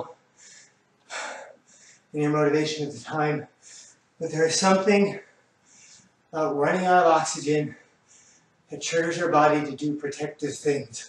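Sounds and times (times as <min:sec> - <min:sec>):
man breathing hard: 0:00.4 - 0:02.1, 0:03.6 - 0:04.0, 0:08.0 - 0:08.6.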